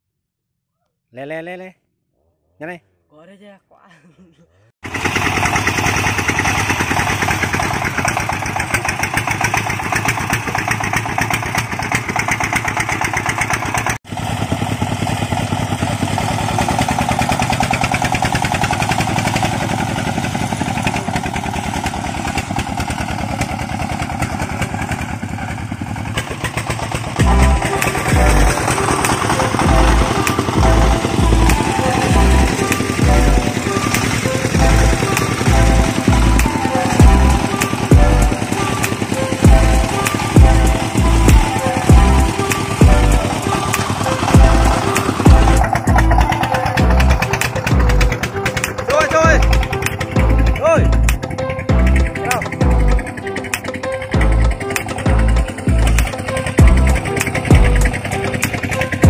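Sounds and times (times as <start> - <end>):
diesel truck engine running: 4.8 - 59.0
music with bass beat: 27.2 - 28.7, 29.6 - 33.6, 34.6 - 38.4, 39.4 - 43.2, 44.3 - 58.5.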